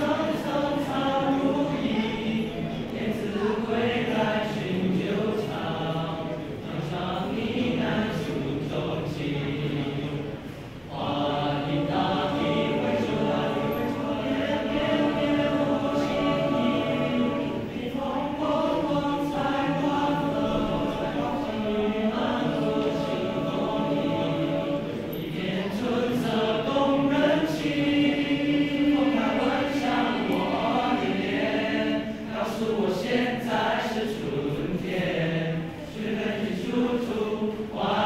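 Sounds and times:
boys' choir singing unaccompanied: 0.0s - 38.0s.

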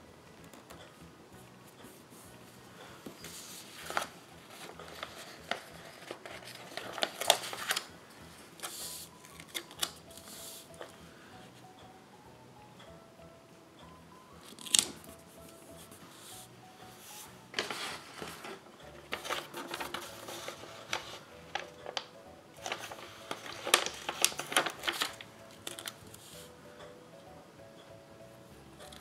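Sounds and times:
soft background music: 0.0s - 29.0s
paper rustling and crinkling: 3.2s - 7.9s, 8.6s - 10.9s, 17.2s - 26.4s.

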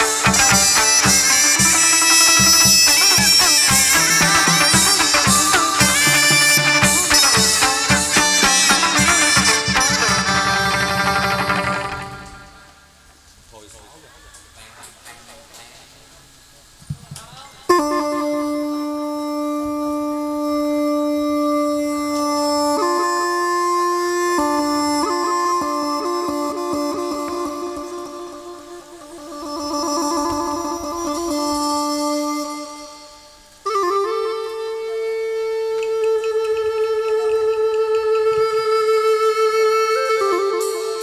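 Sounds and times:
reedy wind instrument melody: 0.0s - 13.0s, 17.7s - 41.0s.

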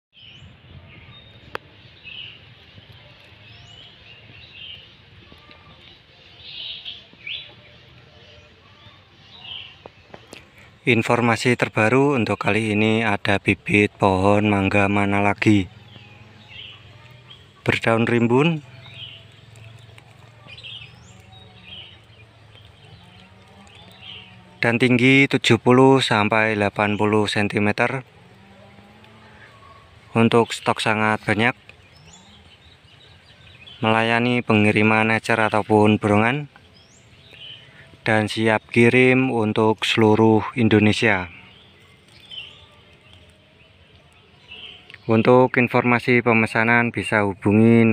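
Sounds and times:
birds chirping: 0.1s - 47.9s
faint background noise: 0.2s - 47.9s.

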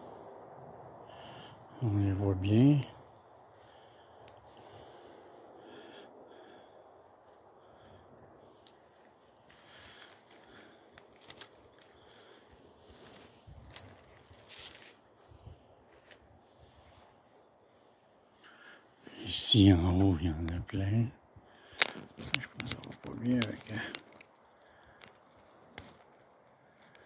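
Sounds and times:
rustles and crackles of branches: 0.0s - 27.0s.

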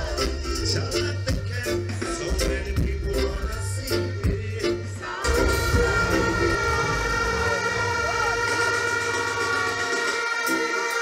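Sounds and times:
low bass: 0.0s - 9.4s
siren-like electronic chord: 5.2s - 11.0s.

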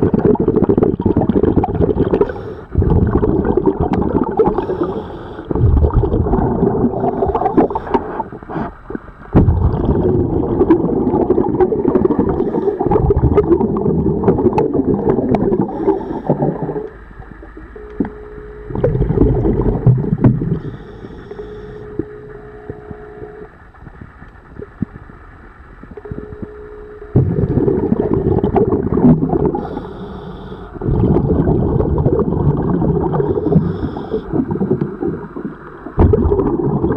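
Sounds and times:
exhaled bubbles rushing: 0.0s - 18.1s, 18.7s - 20.8s, 27.1s - 29.9s, 30.8s - 36.9s
faint steady tone: 1.5s - 36.9s.

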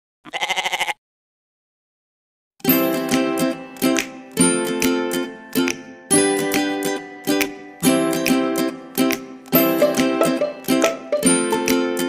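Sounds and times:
goat bleat: 0.2s - 1.0s.

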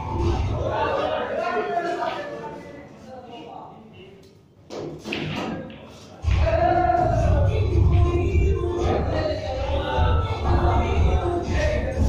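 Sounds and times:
indistinct voices: 0.0s - 4.3s, 5.1s - 12.0s.

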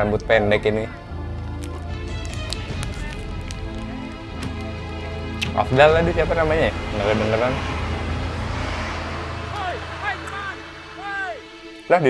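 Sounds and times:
car driving away: 5.5s - 11.5s.

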